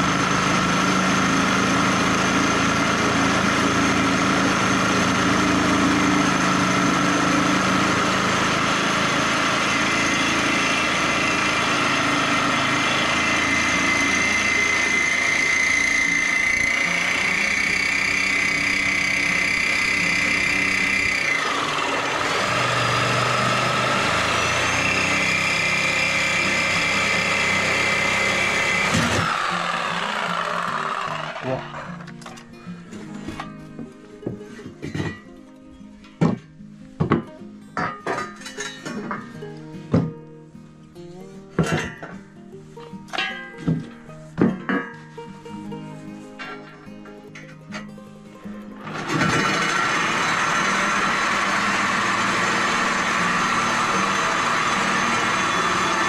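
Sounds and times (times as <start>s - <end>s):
reciprocating saw cutting steel: 0.0s - 32.2s, 48.8s - 56.0s.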